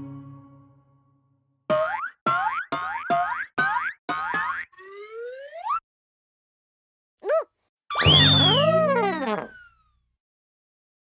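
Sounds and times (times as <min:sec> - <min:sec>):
upward slide sound effect: 0:07.3 - 0:09.6.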